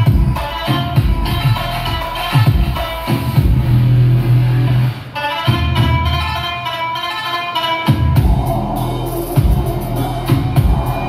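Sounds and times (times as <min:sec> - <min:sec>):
kick drum: 0:00.0 - 0:03.8, 0:07.9 - 0:08.5, 0:09.4 - 0:09.7, 0:10.3 - 0:11.0
dance music: 0:00.0 - 0:11.0.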